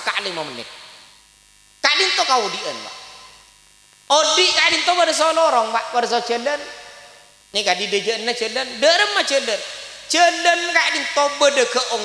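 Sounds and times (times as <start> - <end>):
man's amplified voice: 0.0 - 0.9, 1.8 - 3.4, 4.1 - 12.0
faint mains hum: 0.0 - 12.0.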